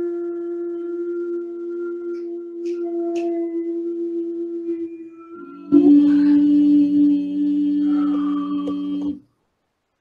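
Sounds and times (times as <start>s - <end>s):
singing bowls ringing: 0.0s - 9.2s.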